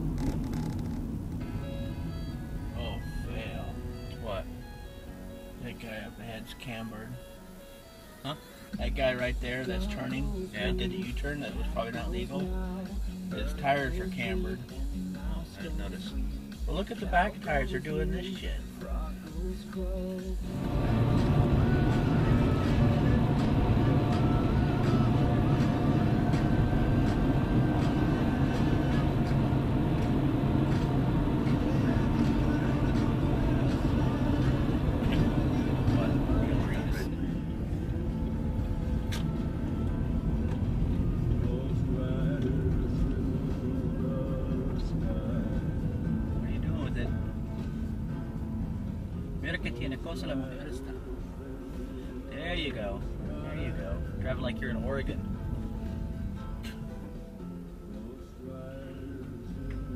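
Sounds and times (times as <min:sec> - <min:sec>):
music with vocals on car radio: 0:00.0 - 0:59.9
road and engine noise: 0:00.0 - 0:59.9.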